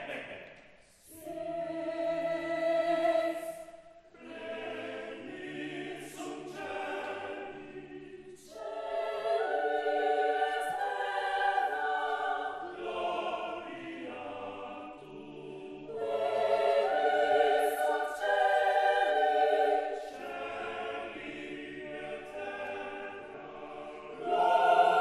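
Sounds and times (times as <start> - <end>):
mixed choir singing: 0.0 - 25.0.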